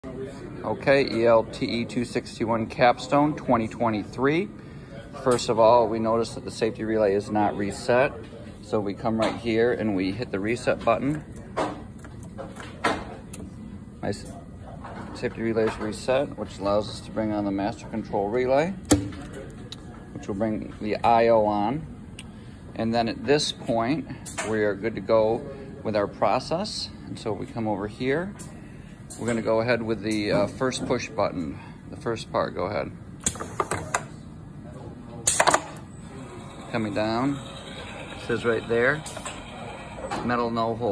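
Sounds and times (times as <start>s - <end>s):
low machine noise: 0.0s - 40.9s
sharp mechanical clicks and knocks: 35.3s - 35.8s.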